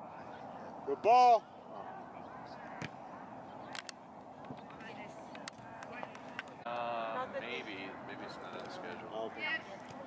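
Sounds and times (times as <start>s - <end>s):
distant voices: 0.0s - 10.0s.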